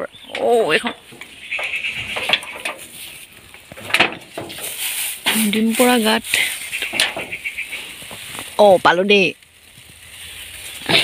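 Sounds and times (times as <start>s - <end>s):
farm animal call: 0.0s - 3.3s, 5.8s - 8.7s.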